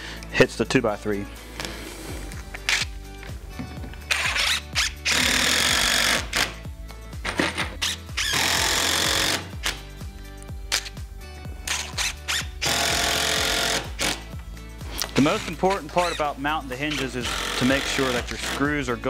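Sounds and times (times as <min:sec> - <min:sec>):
background music: 0:00.0 - 0:19.0
impact driver driving screws: 0:04.1 - 0:06.6, 0:07.3 - 0:09.8, 0:11.7 - 0:14.2, 0:16.9 - 0:18.6.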